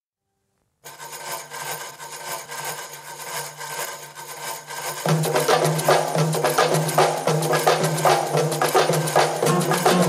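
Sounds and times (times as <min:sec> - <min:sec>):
frame drum jingle roll: 0:05.1 - 0:10.0.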